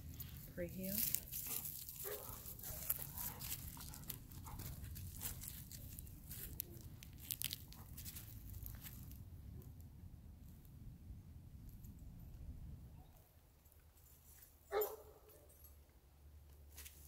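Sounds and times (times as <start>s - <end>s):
footsteps on dry grass: 0.0s - 9.2s
low steady rumble: 0.0s - 13.8s.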